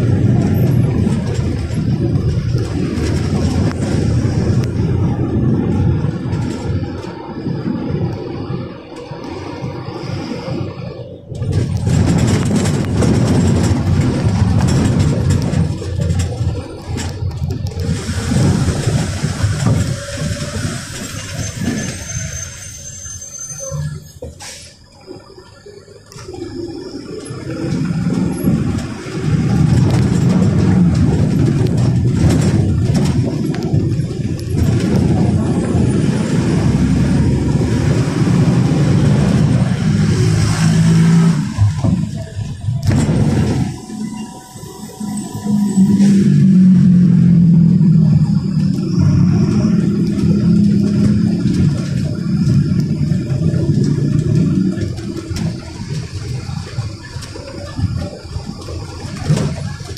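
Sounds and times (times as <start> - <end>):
bus diesel engine under load: 0.0 - 59.9.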